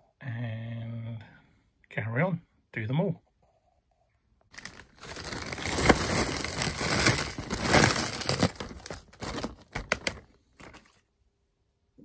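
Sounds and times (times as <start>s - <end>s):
plastic bag crinkling: 4.5s - 11.0s.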